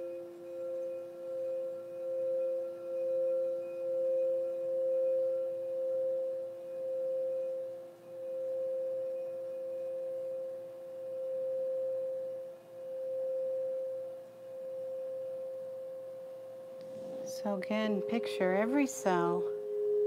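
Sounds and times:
singing bowls humming: 0:00.0 - 0:20.0.

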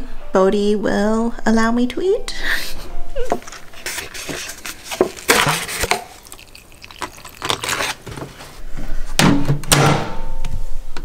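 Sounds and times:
paper cup rustling and tapping: 0:03.3 - 0:08.6.

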